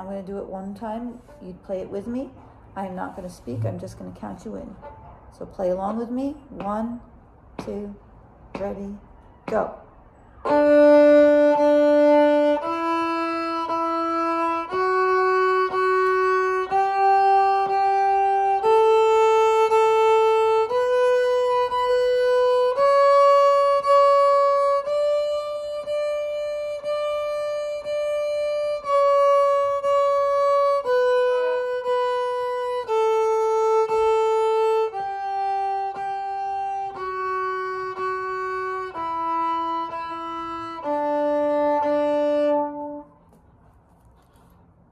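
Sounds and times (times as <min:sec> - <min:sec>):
viola playing a scale: 0:03.1 - 0:05.1, 0:10.4 - 0:43.3.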